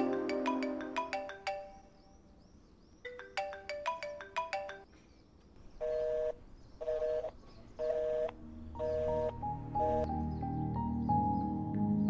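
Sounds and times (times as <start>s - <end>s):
chiming ringtone: 0.0s - 2.0s, 3.1s - 4.9s
phone line beeps: 7.9s - 10.1s.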